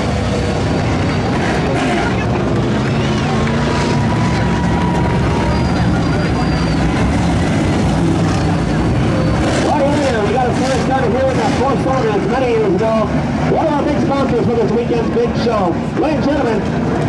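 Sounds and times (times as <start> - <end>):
race car engines rumbling: 0.0 - 17.0.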